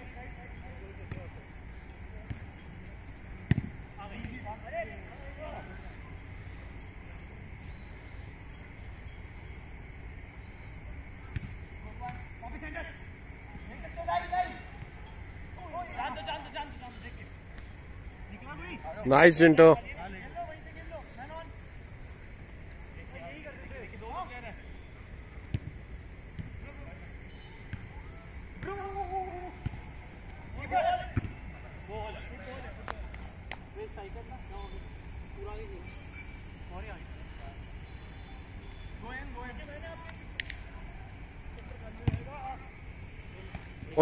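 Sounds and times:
low background hiss: 0.0s - 44.0s
ball being kicked: 3.5s - 4.4s, 42.0s - 42.4s
players shouting: 26.6s - 33.3s.

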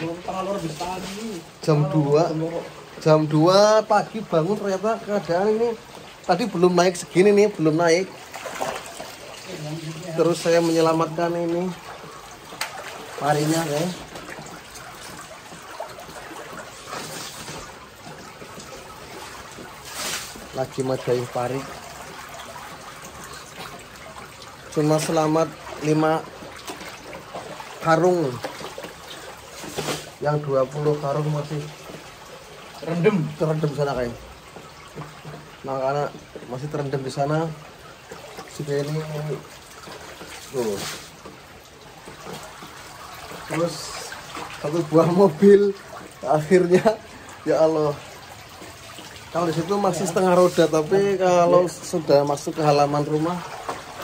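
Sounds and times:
water trickling: 0.0s - 54.0s.

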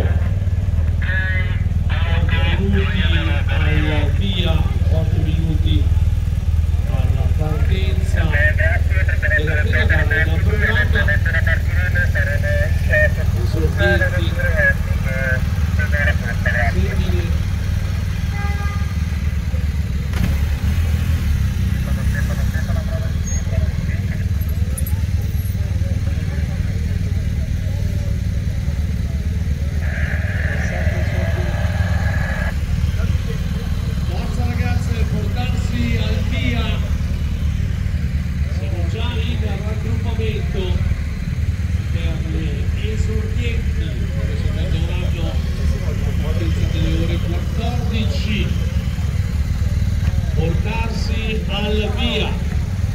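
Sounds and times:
people talking: 0.0s - 6.1s, 6.8s - 18.0s, 21.7s - 52.9s
vehicle engine rumble: 0.0s - 52.9s.

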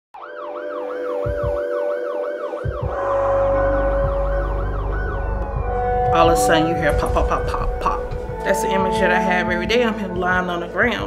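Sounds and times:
siren yelping: 0.2s - 10.2s
steady tone: 1.2s - 10.9s
low thumps: 2.6s - 11.0s
deep rumble: 2.8s - 11.0s.

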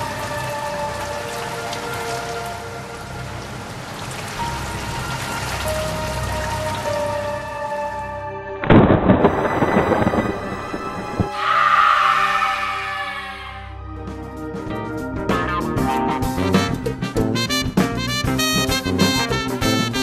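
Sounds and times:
rain: 0.0s - 11.5s
soft sustained music notes: 0.0s - 17.5s
rolling thunder: 8.6s - 11.4s.

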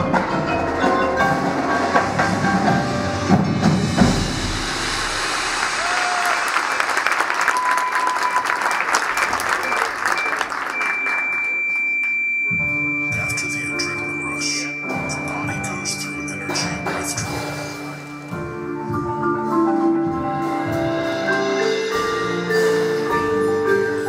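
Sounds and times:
dense percussion rattle: 1.2s - 5.8s
high synthesizer tone: 12.3s - 18.2s
marimba and mallet notes: 12.5s - 24.0s.

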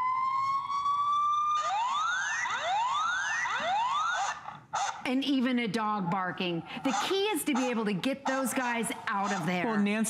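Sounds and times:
electronic police siren wail: 0.0s - 5.0s.

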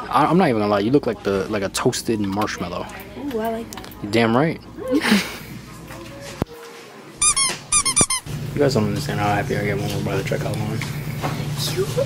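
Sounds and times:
short high-pitched squeaks: 7.2s - 8.3s.

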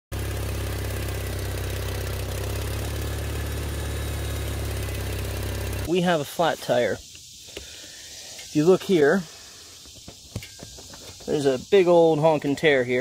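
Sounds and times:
tractor engine idling: 0.1s - 5.9s.

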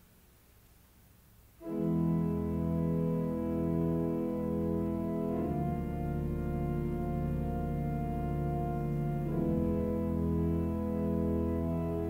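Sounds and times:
church organ chords: 1.6s - 12.0s.

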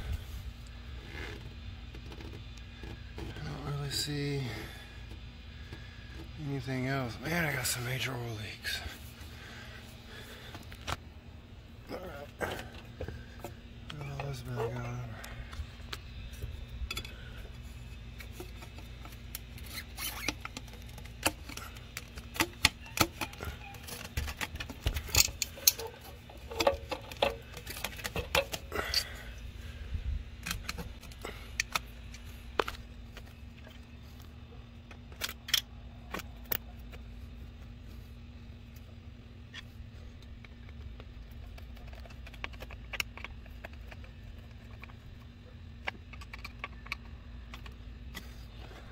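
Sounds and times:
steady low hum: 0.0s - 48.9s
handling clicks and light knocks: 12.4s - 29.1s, 30.4s - 37.7s, 40.2s - 48.7s.

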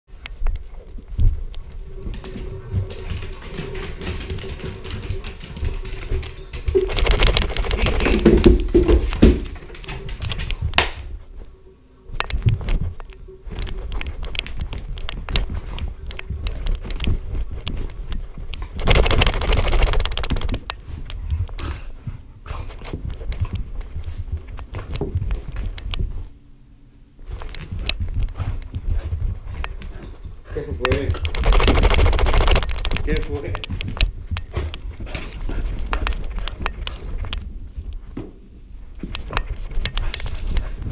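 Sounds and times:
dog claws clattering and scrabbling: 0.3s - 10.8s, 12.2s - 21.8s, 27.3s - 38.2s, 39.0s - 40.9s.

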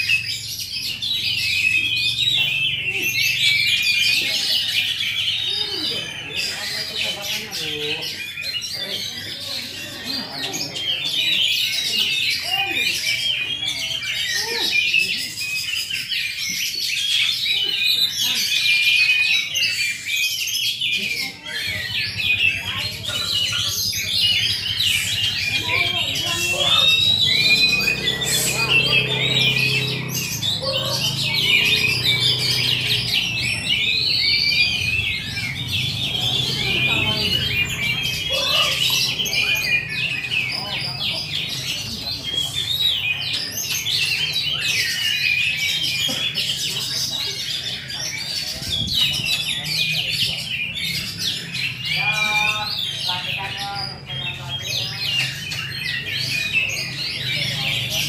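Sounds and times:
many songbirds singing: 0.0s - 58.0s.

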